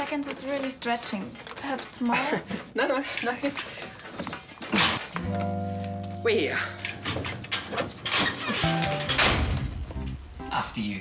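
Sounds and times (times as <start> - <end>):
footsteps through doorway: 0.0 - 10.3
background music: 5.1 - 11.0.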